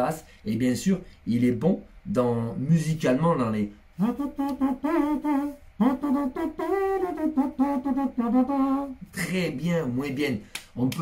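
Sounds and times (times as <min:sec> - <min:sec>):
man humming a melody: 0:04.0 - 0:09.2.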